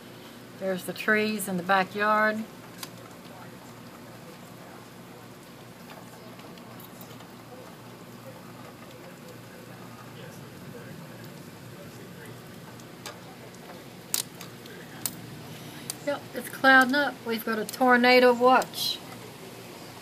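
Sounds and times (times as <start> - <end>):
light rain patter: 0.0 - 20.0.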